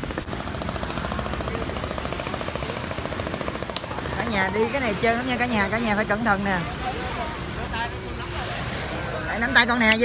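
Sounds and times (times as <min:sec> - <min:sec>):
boat engine running: 0:00.0 - 0:10.0.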